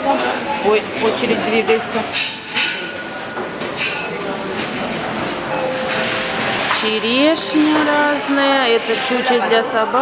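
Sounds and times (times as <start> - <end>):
shopping trolley wheels rumbling: 2.9 - 10.0.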